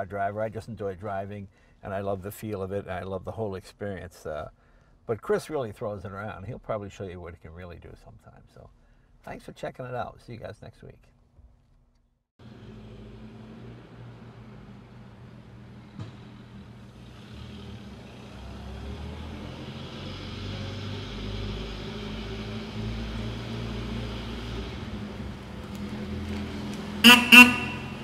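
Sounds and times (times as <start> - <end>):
car horn toots: 27.0 - 28.0.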